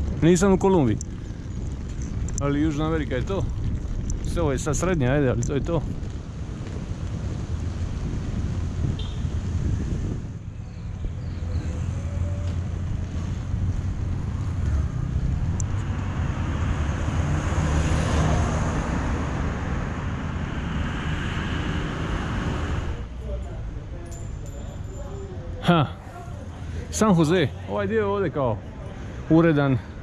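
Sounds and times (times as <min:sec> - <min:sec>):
wind buffeting microphone: 0:00.0 - 0:17.3
broad rushing noise: 0:16.2 - 0:23.1.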